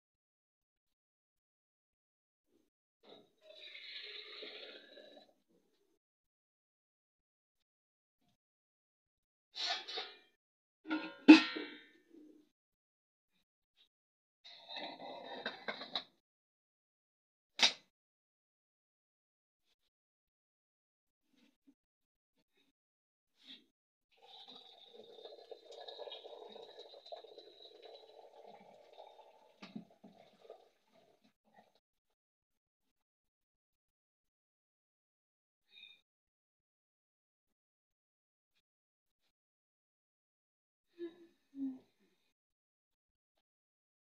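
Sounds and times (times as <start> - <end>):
metal pots and utensils knocking: 10.9 - 11.8
water splashing in metal pot: 24.2 - 31.3.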